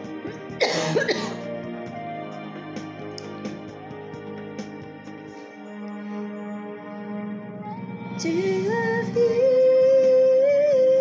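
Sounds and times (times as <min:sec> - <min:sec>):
soft backing music: 0:00.0 - 0:11.0
woman coughing: 0:00.6 - 0:01.4.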